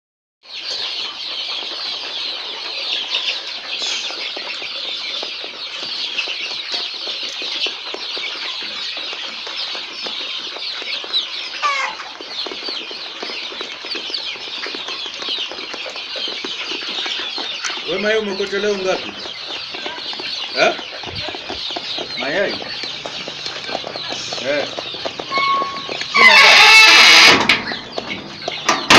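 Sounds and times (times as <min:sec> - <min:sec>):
hens clucking: 0:00.6 - 0:28.9.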